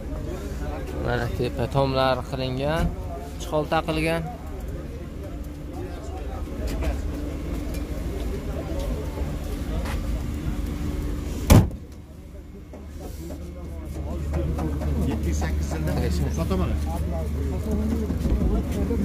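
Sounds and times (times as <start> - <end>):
indistinct voices: 0.0 - 19.0
steady low rumble: 0.0 - 19.0
sharp knock: 11.5 - 11.8.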